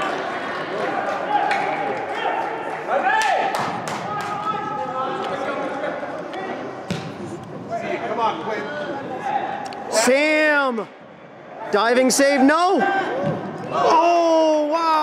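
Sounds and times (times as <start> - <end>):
people shouting in echoing hall: 0.0 - 5.3, 12.4 - 15.0
ball being kicked: 6.9 - 7.5.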